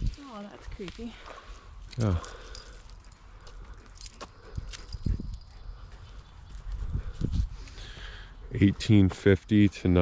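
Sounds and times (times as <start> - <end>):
footsteps on forest floor: 0.0 - 9.3.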